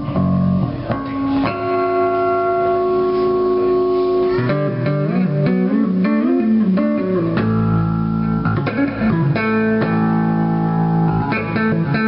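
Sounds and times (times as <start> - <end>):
electric bass guitar: 0.0 - 12.0.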